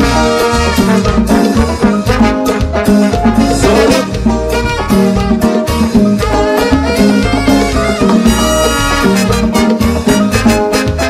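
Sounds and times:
live latin dance band: 0.0s - 11.0s.

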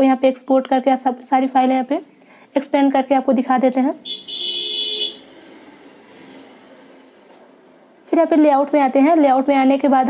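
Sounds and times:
horn-like toot: 4.0s - 5.3s.

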